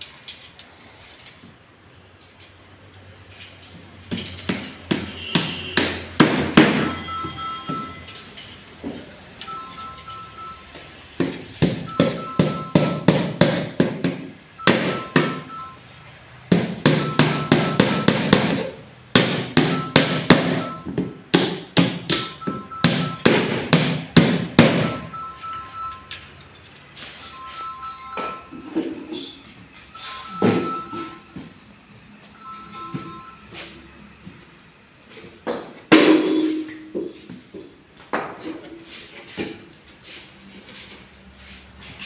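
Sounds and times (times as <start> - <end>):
hammer nailing wooden boards: 11.2 - 15.5, 16.5 - 25.0.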